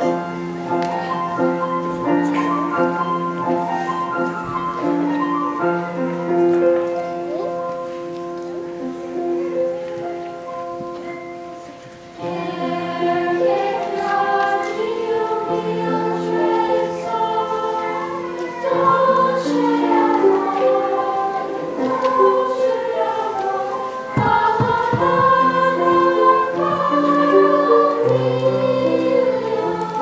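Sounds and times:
choir singing: 0.0 - 7.0, 12.1 - 30.0
piano accompaniment: 0.0 - 30.0.

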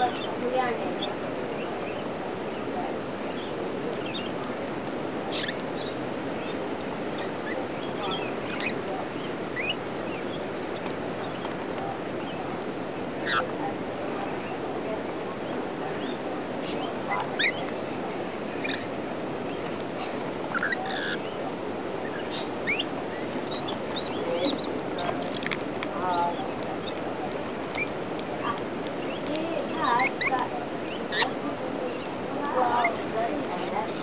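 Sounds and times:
lorikeets chirping and squeaking: 0.0 - 34.0
steady background noise: 0.0 - 34.0.

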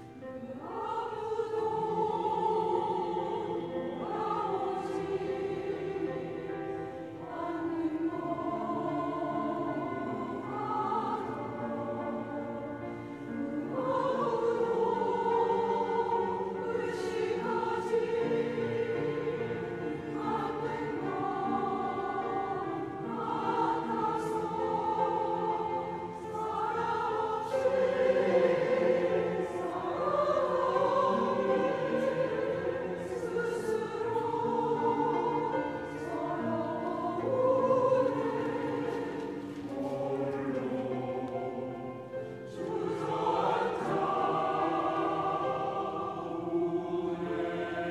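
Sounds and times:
church choir singing: 0.0 - 47.9.

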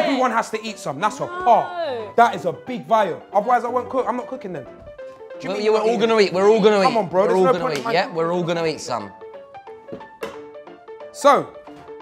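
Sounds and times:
light melodic background music: 0.0 - 12.0.

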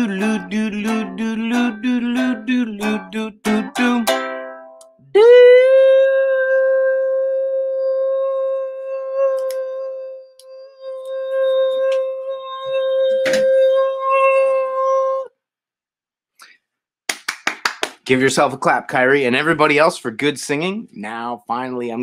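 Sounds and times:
man singing a long high note: 0.0 - 4.3, 5.1 - 15.3.

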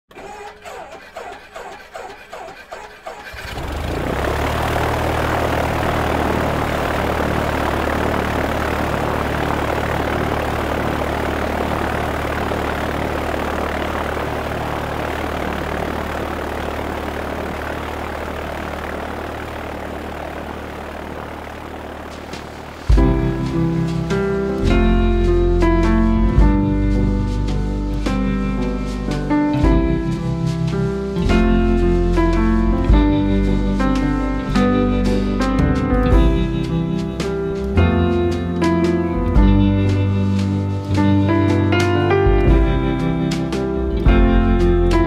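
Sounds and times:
aircraft engine cranking and running: 0.0 - 45.0.

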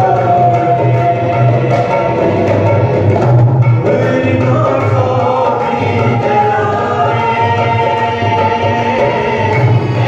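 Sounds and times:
voices singing together: 0.0 - 3.1, 3.7 - 10.0
hand drum beat: 0.0 - 10.0
woman singing: 4.1 - 10.0.

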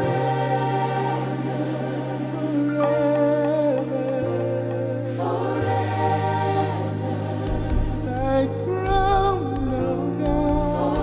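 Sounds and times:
choir holding long notes: 0.0 - 11.0
sustained keyboard chords: 0.0 - 11.0
bass: 7.5 - 11.0.

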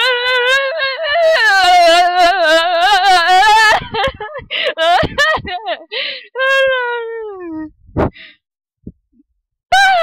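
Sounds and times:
girls yelping and laughing: 3.6 - 5.9.

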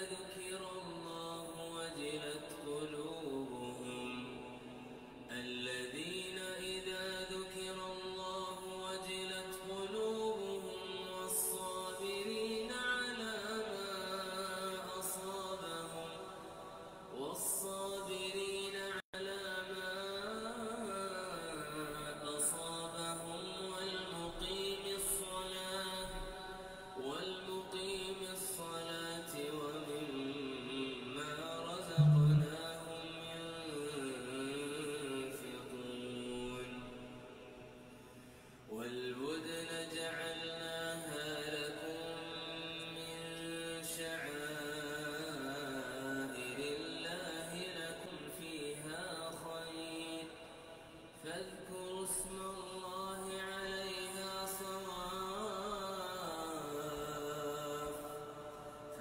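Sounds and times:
man reciting melodically: 0.0 - 4.5, 5.3 - 37.1, 38.7 - 50.6, 51.2 - 59.0.

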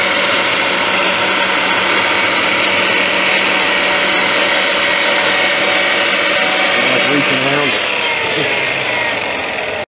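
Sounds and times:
electric motor whining: 0.0 - 9.9.

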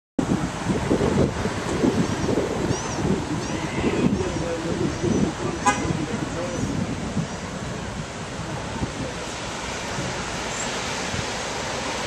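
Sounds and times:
street ambience: 0.2 - 12.0
wind buffeting microphone: 0.2 - 12.0.

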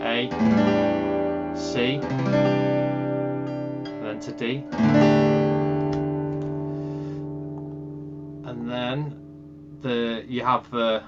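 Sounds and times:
acoustic guitar chord strummed: 0.0 - 11.0.

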